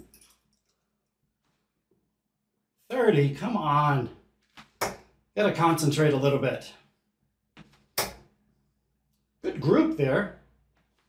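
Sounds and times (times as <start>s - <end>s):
dart hitting dartboard: 4.6s - 5.1s, 7.6s - 8.3s.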